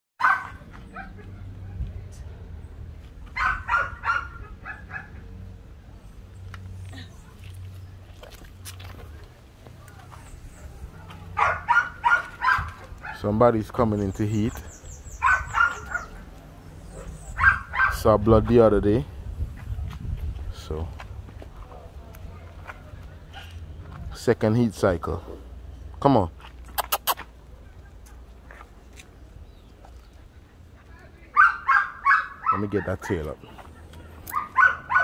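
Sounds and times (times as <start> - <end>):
dog barking: 0.2 - 1.5, 3.4 - 5.2, 11.3 - 13.3, 15.1 - 18.1, 31.3 - 33.2, 34.3 - 35.0.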